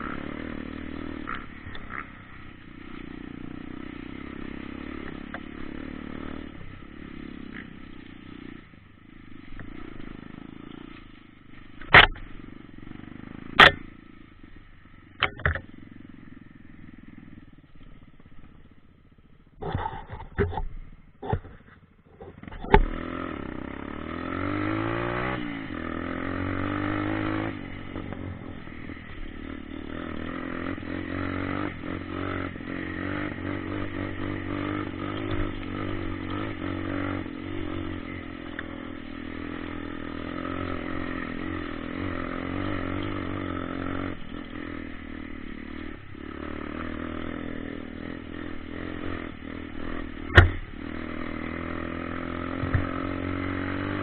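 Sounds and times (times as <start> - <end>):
dirt bike engine revving: 0.0 - 20.6, 22.4 - 54.0
sharp knock: 50.3 - 50.6.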